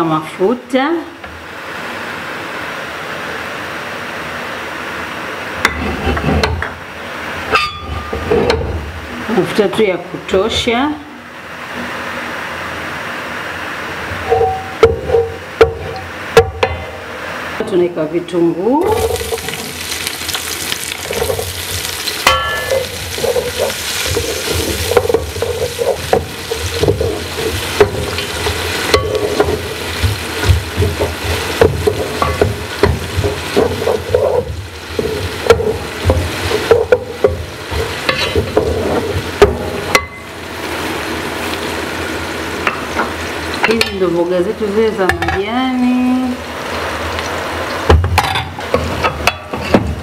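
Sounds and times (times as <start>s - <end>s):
onions sizzling in oil: 13.4s - 17.6s, 18.8s - 50.0s
spoon scraping a metal pot: 22.4s - 36.8s.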